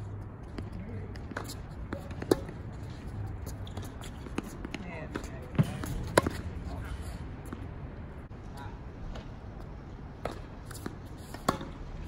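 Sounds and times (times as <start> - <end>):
tennis ball bouncing on hard court: 0.4 - 6.5, 10.2 - 12.0
tennis ball struck by rackets: 1.2 - 2.7, 3.7 - 6.5, 10.2 - 12.0.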